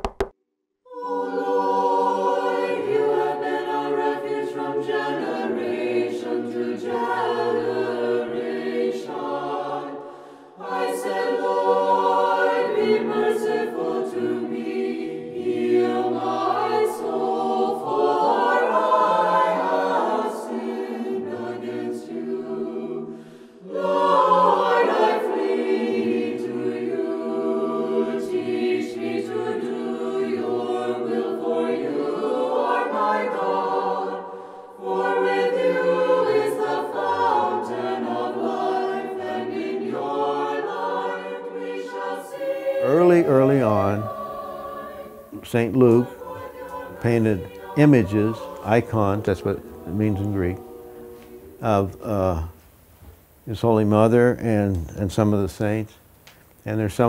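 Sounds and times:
choir singing a cappella: 0:00.9 - 0:55.9.

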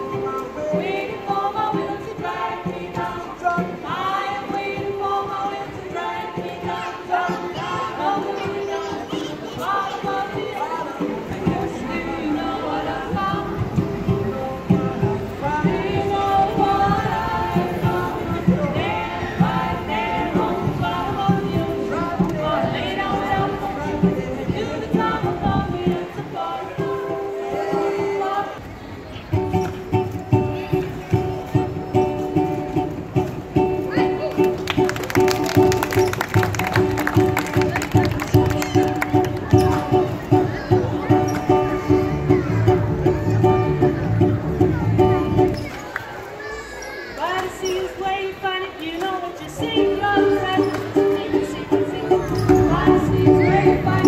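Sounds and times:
people singing: 0:00.0 - 0:28.8, 0:47.6 - 0:54.0
banjo strumming: 0:00.0 - 0:45.7, 0:49.4 - 0:54.0.

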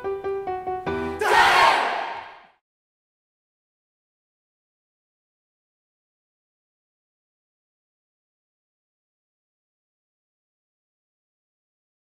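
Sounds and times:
mixed choir singing: 0:01.2 - 0:02.5
choir shouting: 0:01.2 - 0:02.6.

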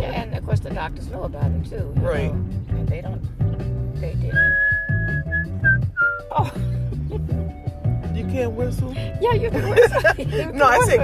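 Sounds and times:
background music: 0:00.0 - 0:11.0
person whistling: 0:04.3 - 0:06.3.

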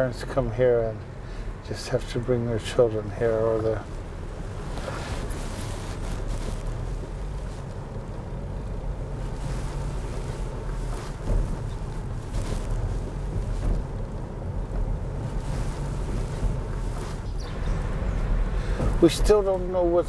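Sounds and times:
car road and engine rumble: 0:00.0 - 0:20.0
brief thump: 0:11.1 - 0:11.8.

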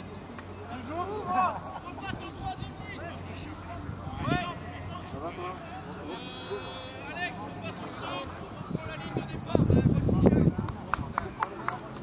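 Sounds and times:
distant voices of people: 0:00.0 - 0:12.0
long held shout: 0:06.0 - 0:07.3.

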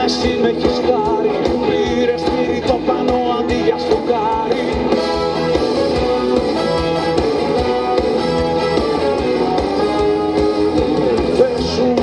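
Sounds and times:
bass guitar: 0:00.0 - 0:12.0
electric guitars: 0:00.0 - 0:12.0
steady drum beat: 0:00.0 - 0:12.0.

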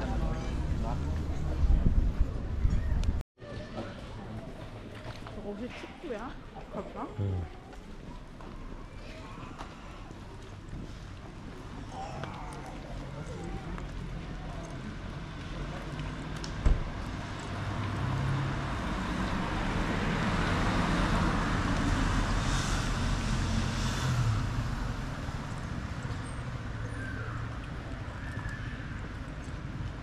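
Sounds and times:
car driving past: 0:16.4 - 0:27.2.

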